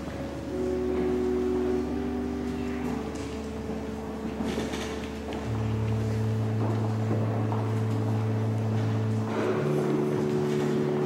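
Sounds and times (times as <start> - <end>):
pipe organ chord: 0.0 - 11.0.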